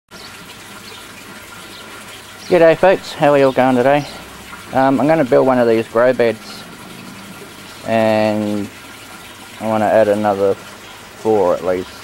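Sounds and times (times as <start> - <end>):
water running steadily: 0.1 - 12.0.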